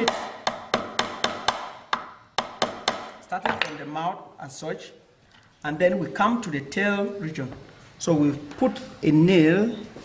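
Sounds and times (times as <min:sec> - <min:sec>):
hammer knocking nail into wood: 0:00.0 - 0:03.7.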